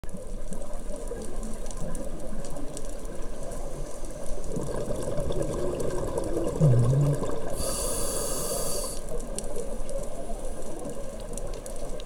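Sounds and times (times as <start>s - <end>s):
underwater regulator bubbling: 4.5s - 9.0s.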